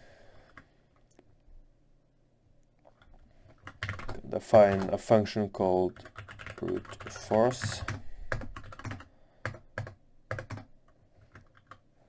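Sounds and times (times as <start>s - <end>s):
computer keyboard typing: 3.1s - 5.0s, 5.9s - 11.8s.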